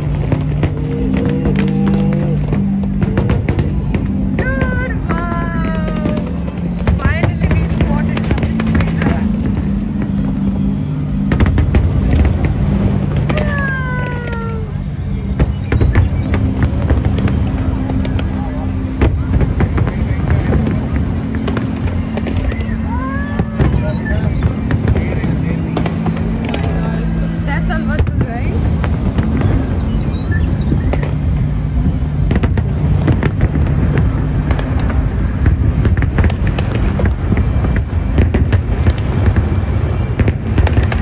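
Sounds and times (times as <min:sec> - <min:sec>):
voices: 0:00.0 - 0:31.1
distant fireworks bangs and crackle: 0:00.0 - 0:41.0
low rumble: 0:00.0 - 0:41.0
music with low notes: 0:00.0 - 0:41.0.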